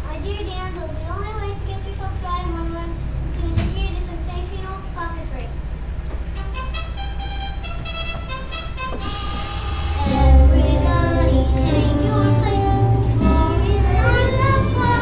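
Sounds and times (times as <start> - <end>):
instrumental accompaniment with bass: 6.4 - 15.0
children singing: 10.0 - 15.0.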